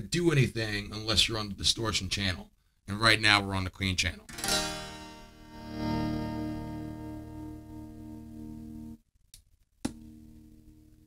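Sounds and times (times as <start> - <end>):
electric guitar chord ringing: 4.3 - 9.0.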